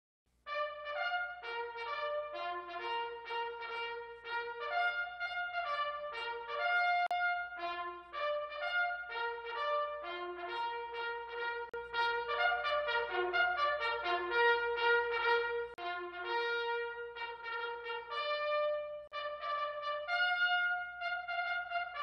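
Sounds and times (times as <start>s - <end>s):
bugle call: 0.5s - 22.0s.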